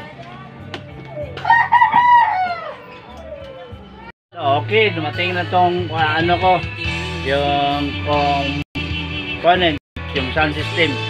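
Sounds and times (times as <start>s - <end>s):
rooster crowing: 1.4s - 3.4s.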